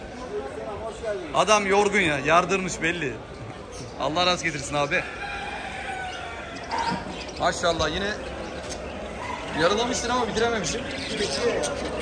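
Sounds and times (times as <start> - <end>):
budgerigars chattering: 5.3 - 12.0.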